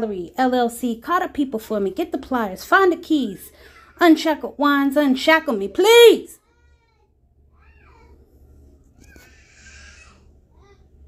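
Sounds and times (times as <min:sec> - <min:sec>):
faint high-pitched cry: 0:06.4 - 0:08.4, 0:09.0 - 0:11.0.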